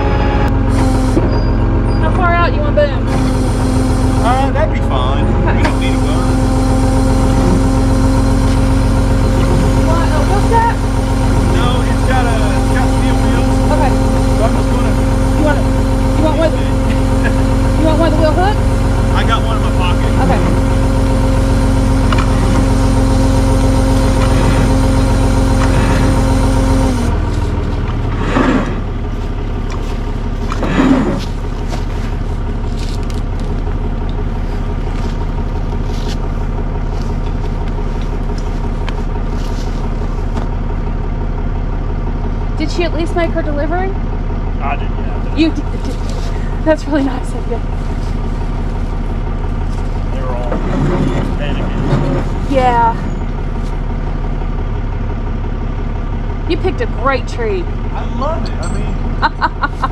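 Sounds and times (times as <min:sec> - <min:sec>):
high steady whine: 0:00.0 - 0:40.6
tow truck engine idling: 0:00.0 - 0:59.9.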